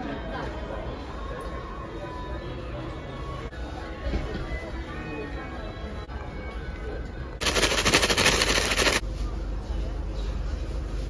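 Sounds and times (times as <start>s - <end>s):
paper bag rattling: 7.4s - 9.0s.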